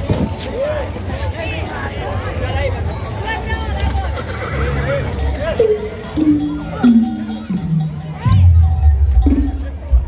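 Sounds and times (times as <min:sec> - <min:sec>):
crowd voices: 0:00.0 - 0:10.0
horse whinnying: 0:04.0 - 0:05.1.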